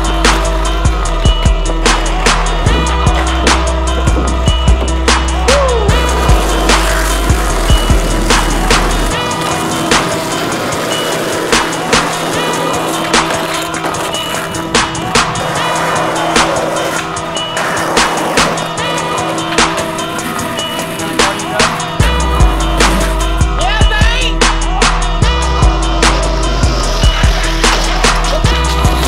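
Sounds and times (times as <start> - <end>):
skateboard wheels rolling on asphalt: 0.0 - 23.6, 25.5 - 29.0
backing music with beat: 0.0 - 29.0.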